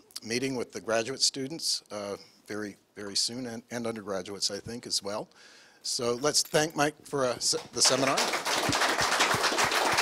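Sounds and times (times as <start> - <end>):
audience applauding: 7.8 - 10.0.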